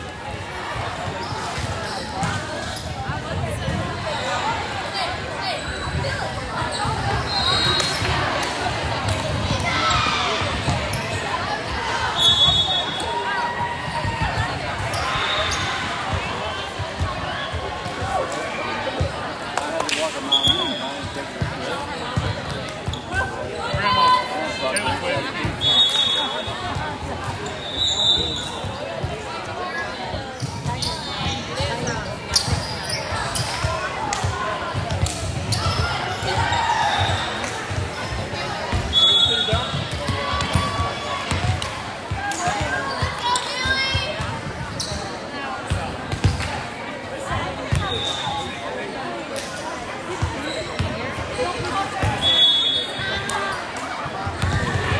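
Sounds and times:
voices of players and spectators: 0.0 - 54.9
shoe squeaks: 44.7 - 45.2, 50.4 - 50.8.

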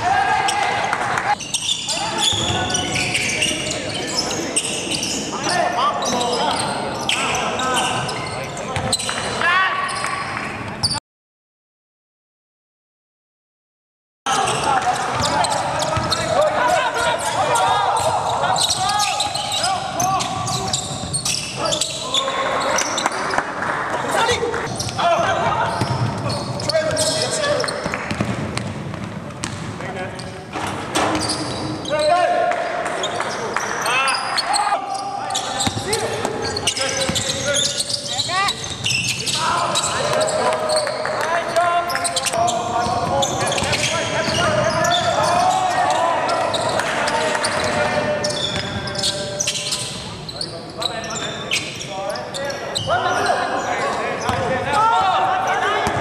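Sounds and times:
players calling out: 14.3 - 28.1, 31.0 - 56.0
basketball bouncing on hardwood: 28.1 - 29.7.

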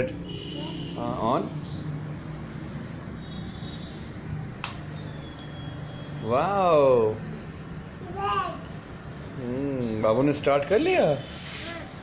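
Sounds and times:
sharp click: 4.6 - 5.5.

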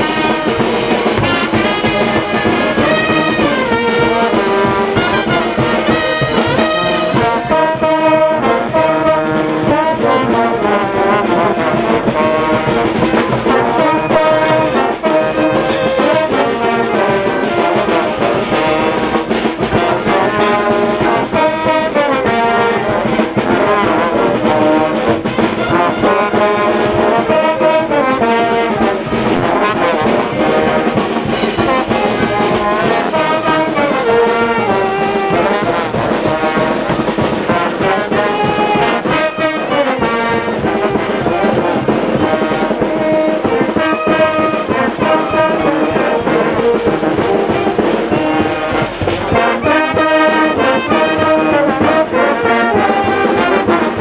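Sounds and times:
brass band playing: 0.0 - 54.0.

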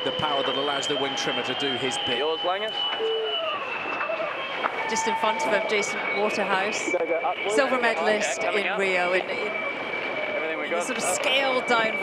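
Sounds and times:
men talking: 0.0 - 2.9, 6.4 - 9.1, 10.3 - 11.9
high-pitched whine: 0.0 - 12.0.

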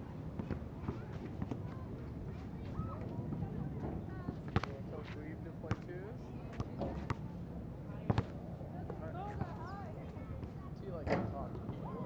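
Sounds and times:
basketball bouncing on asphalt: 5.7 - 5.9, 8.1 - 8.3.

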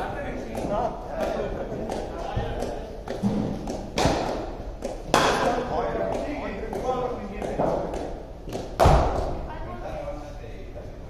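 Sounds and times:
cricket ball impacts: 2.6 - 9.4.

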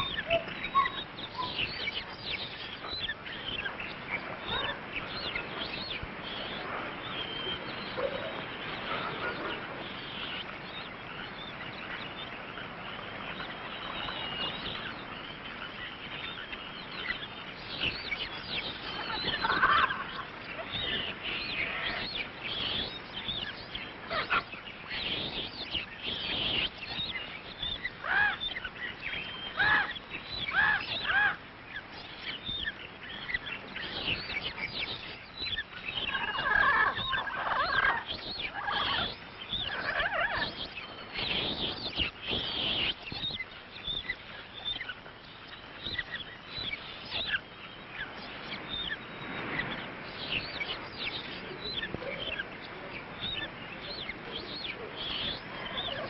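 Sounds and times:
bird calls and chirps: 0.0 - 56.0
repeated falling bird calls: 0.0 - 56.0.

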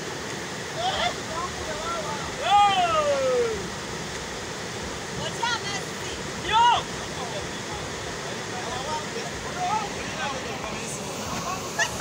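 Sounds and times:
river rapids rushing over rocks: 0.0 - 12.0.

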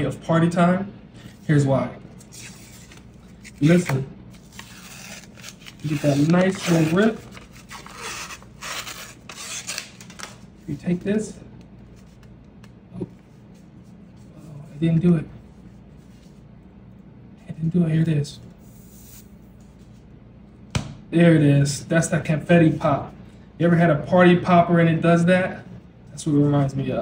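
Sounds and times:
paper wrapper tearing and rustling: 2.2 - 10.4.

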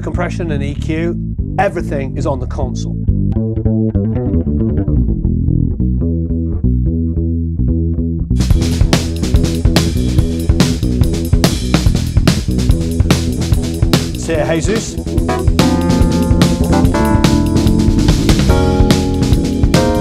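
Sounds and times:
electric bass guitar melodic line: 0.0 - 20.0.

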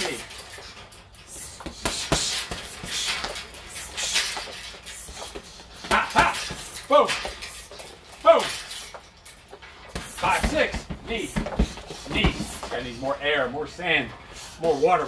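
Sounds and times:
sharp exhaled breaths: 0.5 - 6.8, 14.1 - 14.8
punches thudding on bag: 9.9 - 12.6.

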